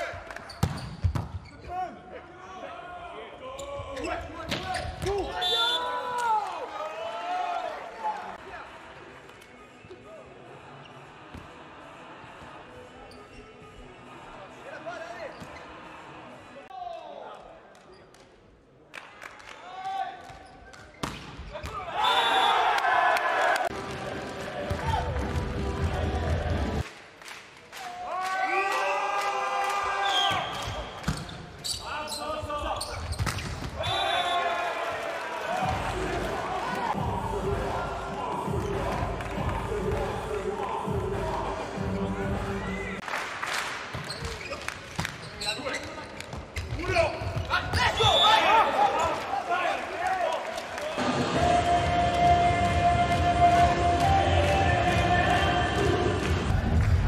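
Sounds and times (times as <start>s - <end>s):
loud voice or singing: 35.7s - 42.9s, 51.0s - 56.5s.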